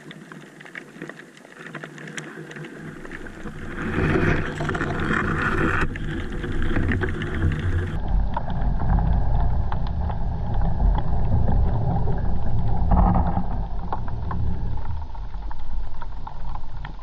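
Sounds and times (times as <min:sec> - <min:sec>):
underwater clicks and crackles: 0:00.0 - 0:17.0
underwater rumble of moving water: 0:00.0 - 0:17.0.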